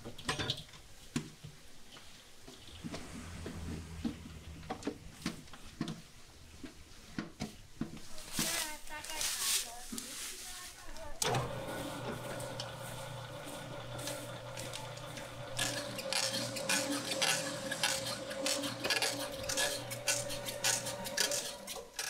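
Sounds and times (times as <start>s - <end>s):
electric stand mixer running: 11.2s - 21.8s
dough hook scraping against bowl: 15.6s - 22.0s.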